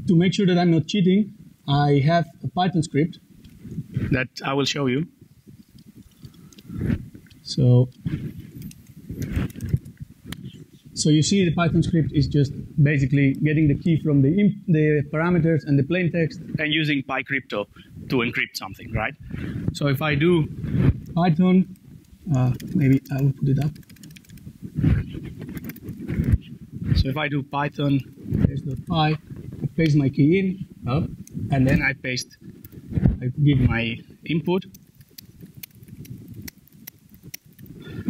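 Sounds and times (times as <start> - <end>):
keyboard keys clicking: 22.4 - 24.4, 25.5 - 26.0, 34.7 - 37.7
enter key presses: 22.5 - 24.4.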